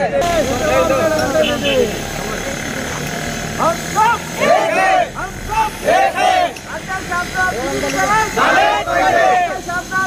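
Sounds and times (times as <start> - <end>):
people talking: 0.0 - 10.0
vehicle engine running: 0.2 - 10.0.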